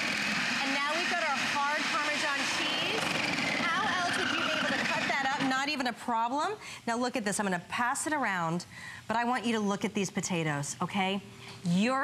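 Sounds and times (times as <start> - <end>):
electric food slicer motor whine: 0.0 - 5.6.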